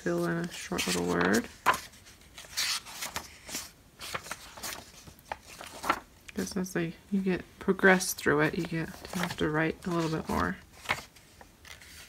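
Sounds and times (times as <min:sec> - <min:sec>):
paper pages turning: 0:00.0 - 0:06.1, 0:08.4 - 0:12.0.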